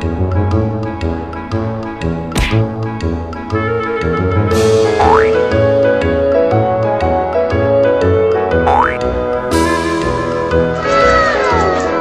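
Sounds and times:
bouncy background music: 0.0s - 12.0s
rising cartoon boing: 5.0s - 5.4s, 8.7s - 9.0s.

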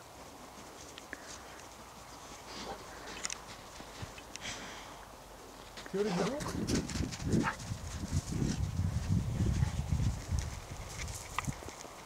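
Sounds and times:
dog paws thudding in snow: 5.7s - 12.0s.

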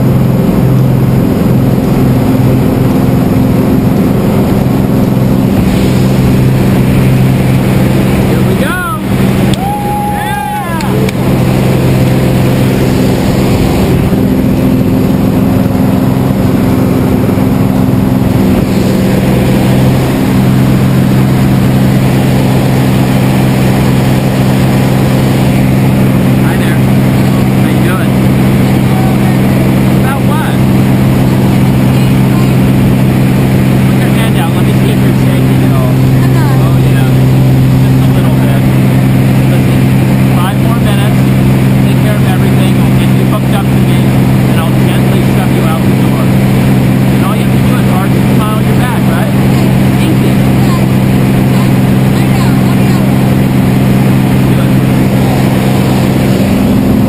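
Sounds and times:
plane engine and propeller droning: 0.0s - 57.0s.

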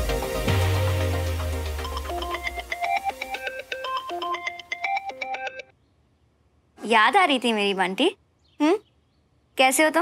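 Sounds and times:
mobile phone ringtone: 1.8s - 5.7s.

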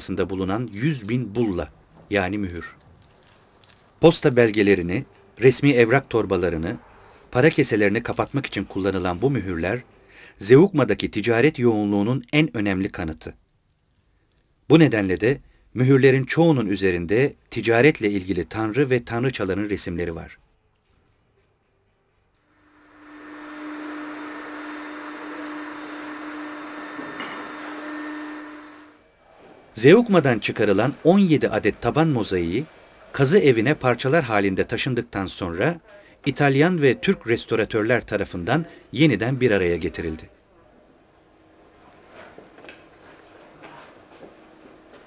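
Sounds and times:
vacuum cleaner running: 22.5s - 34.2s.

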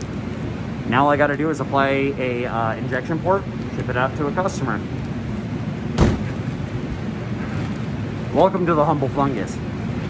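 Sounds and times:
low fan noise: 0.0s - 10.0s
sharp knock: 6.0s - 6.3s.

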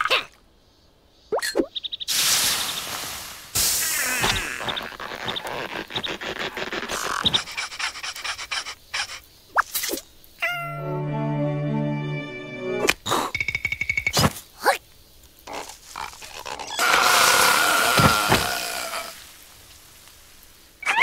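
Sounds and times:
squeaky vocal noises: 3.9s - 9.2s, 15.5s - 19.1s
music cue: 10.7s - 12.9s.

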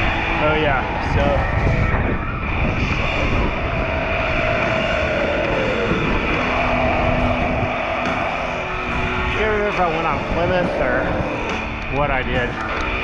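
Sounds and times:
steady low hum: 0.0s - 13.0s
wind buffeting microphone: 0.0s - 13.0s.

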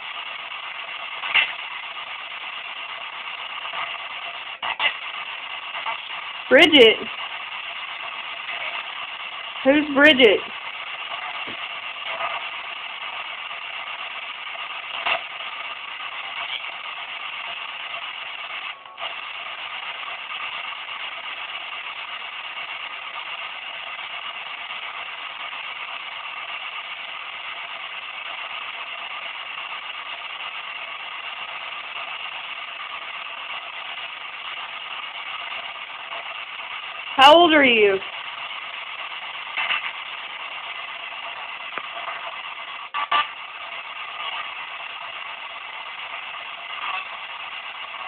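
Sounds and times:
radio static hiss: 0.0s - 48.0s.

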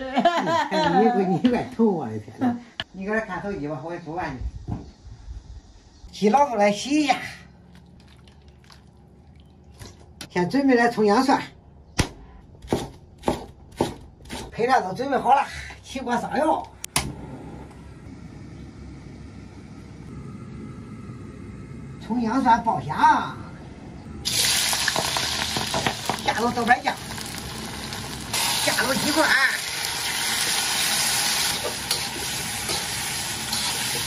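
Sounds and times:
gas stove ignition click: 16.9s - 17.2s
chicken sizzling in hot oil: 24.2s - 34.0s.

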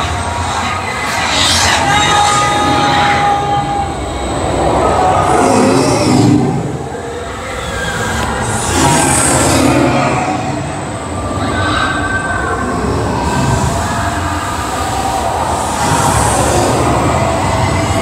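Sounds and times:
held whine: 0.0s - 18.0s.

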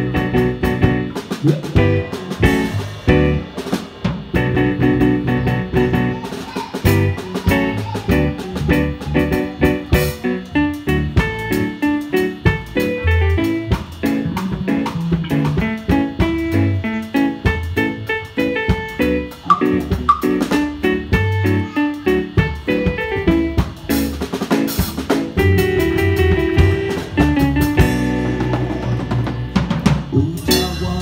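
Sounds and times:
drum kit: 0.0s - 31.0s
electric bass guitar: 0.0s - 31.0s
electronic keyboard: 0.0s - 31.0s.

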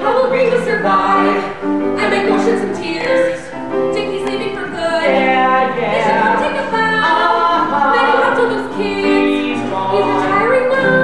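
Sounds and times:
man and woman singing in harmony: 0.0s - 11.0s.

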